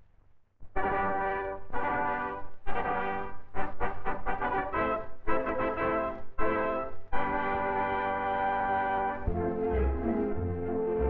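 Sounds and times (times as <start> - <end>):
brass fanfare chords: 0.8 - 11.0.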